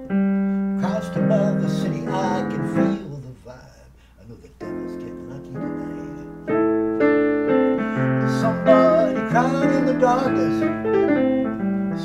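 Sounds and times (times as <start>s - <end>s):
digital piano chords: 0.0s - 3.3s, 4.4s - 12.0s
man singing: 0.8s - 6.3s, 7.9s - 10.9s.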